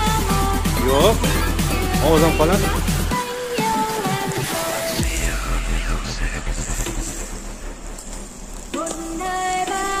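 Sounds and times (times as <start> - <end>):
music with singing voice: 0.0 - 10.0
skewers sizzling over charcoal: 6.5 - 10.0.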